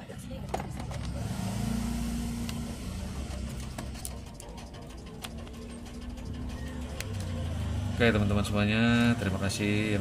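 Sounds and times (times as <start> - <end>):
passing vehicle engine hum: 0.2 - 10.0.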